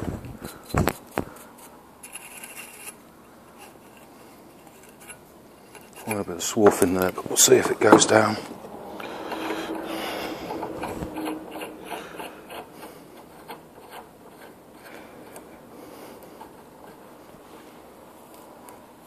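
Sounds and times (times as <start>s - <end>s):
tap rasping and scraping in metal: 0.4s - 17.4s.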